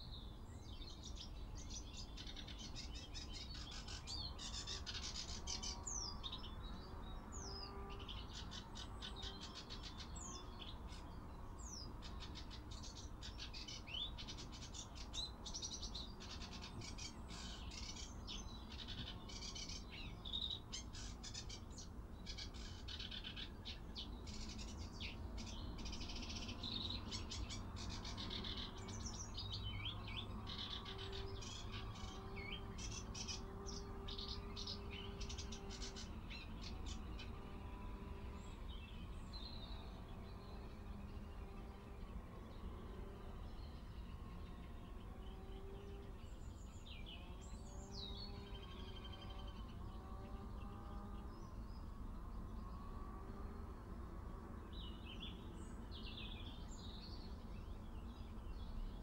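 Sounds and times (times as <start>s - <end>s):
wild birds chirping and calling: 0.0s - 59.0s.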